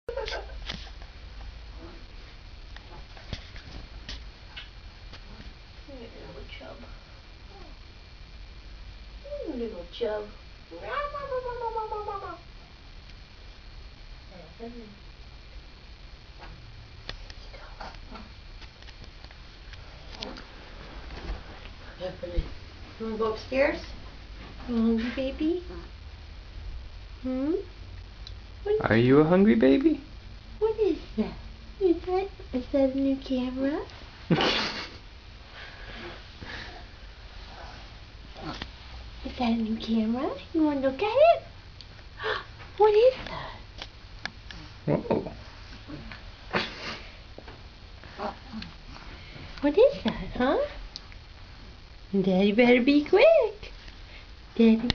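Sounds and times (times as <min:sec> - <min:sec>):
low steady hum: 0:00.0 - 0:54.9.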